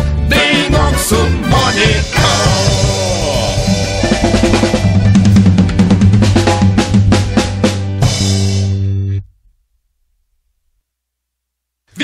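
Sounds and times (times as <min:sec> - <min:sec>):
accordion-led band: 0:00.0 - 0:08.8
drum fill: 0:00.4 - 0:08.8.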